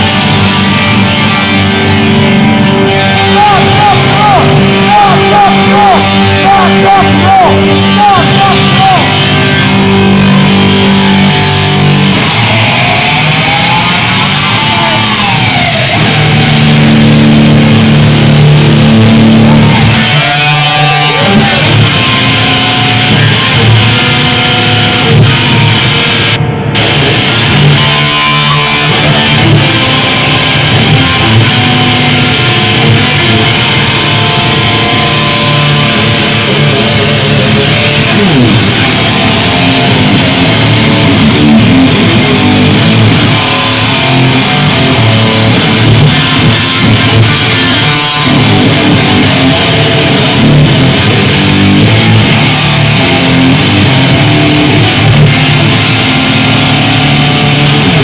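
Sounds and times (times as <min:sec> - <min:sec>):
electric guitar solo: 0:00.0 - 0:58.0.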